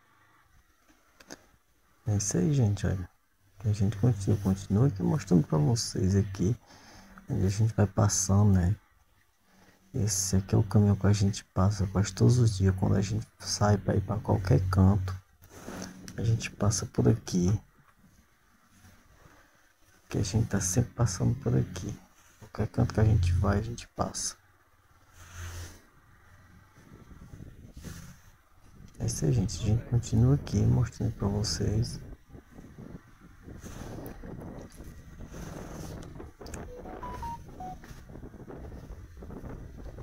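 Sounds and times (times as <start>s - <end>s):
faint low rumble: 1.6s - 9.2s, 9.8s - 18.8s, 20.0s - 34.8s
short high whistle-like tones: 36.6s - 37.9s.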